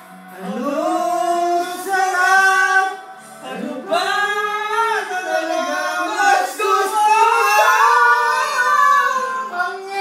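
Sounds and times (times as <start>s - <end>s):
man singing into a microphone: 0.3s - 10.0s.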